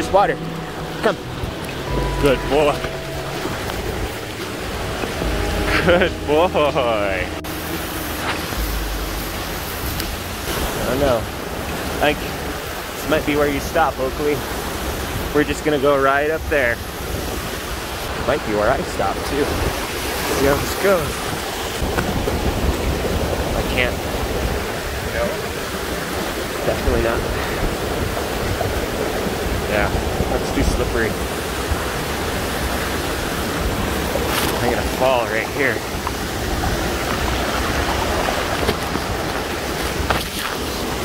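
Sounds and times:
waterfall rushing: 0.0 - 41.0
wind rumble on microphone: 0.0 - 41.0.

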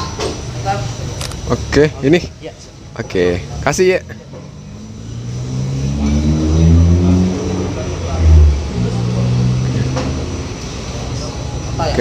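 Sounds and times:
vehicle engine revving: 3.4 - 11.2.

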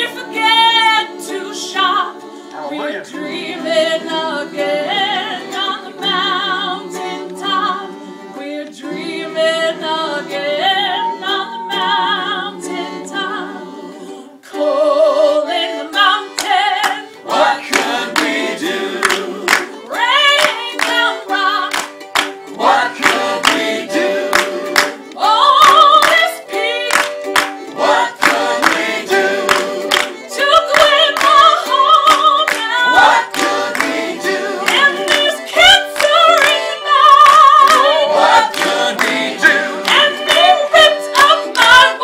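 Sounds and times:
gospel choir singing: 0.0 - 42.0
hand claps: 16.4 - 26.3, 26.9 - 42.0.

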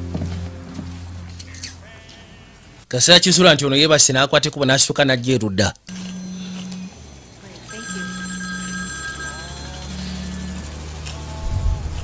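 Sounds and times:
steady electronic tones: 5.8 - 12.0
mobile phone ringing: 5.9 - 11.6.

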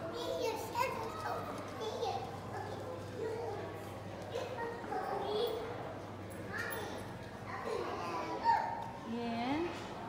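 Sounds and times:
children talking and calling out: 0.0 - 9.1.

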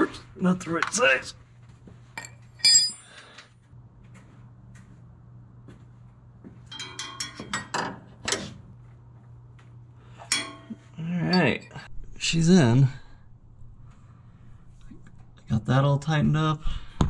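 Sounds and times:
low steady hum: 0.0 - 17.0
metal clinks and knocks: 2.2 - 3.2, 6.6 - 8.0, 10.2 - 11.9.

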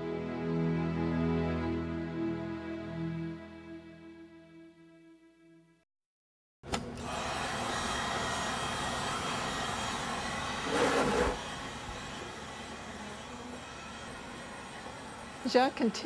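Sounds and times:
heat gun blowing: 6.8 - 16.0.

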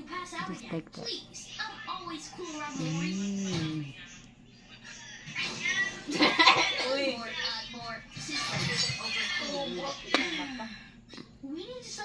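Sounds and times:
cartoon music on television: 1.0 - 10.4.

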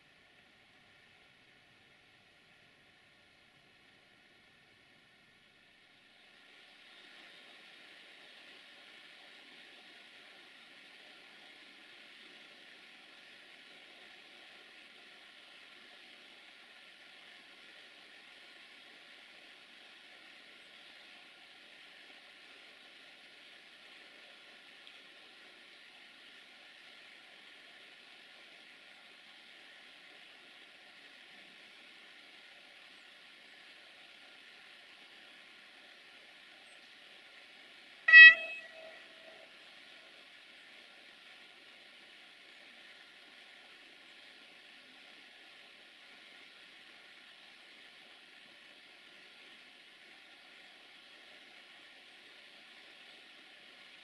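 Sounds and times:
faint steady hiss: 0.0 - 54.0
train horn toot: 38.1 - 39.6.

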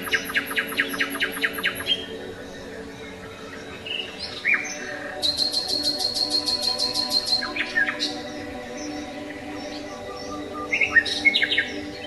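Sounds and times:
bird chirping and trilling: 0.0 - 12.0.

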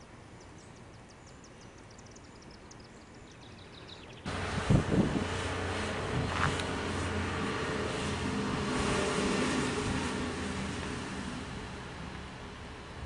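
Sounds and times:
motor vehicle rumble: 3.7 - 13.0.

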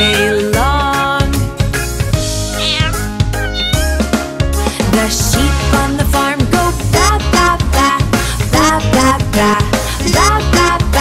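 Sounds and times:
upbeat children's song: 0.0 - 2.9, 3.5 - 11.0
cat meowing: 2.5 - 4.0.

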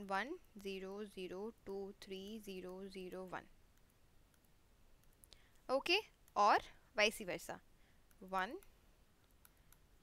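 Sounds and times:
stylus tapping on screen: 1.7 - 6.6.

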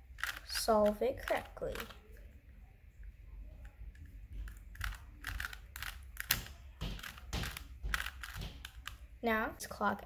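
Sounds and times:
puzzle cube clicking and rattling: 0.1 - 2.0, 4.5 - 9.1.

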